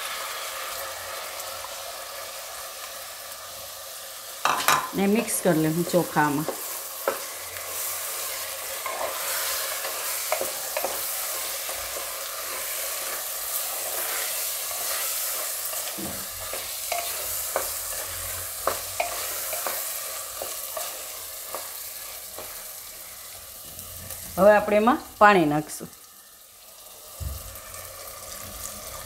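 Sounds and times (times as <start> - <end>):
rice and vegetables sizzling: 0.0 - 29.0
spatula scraping and tapping pot: 5.8 - 7.9, 8.8 - 13.2, 15.7 - 22.6.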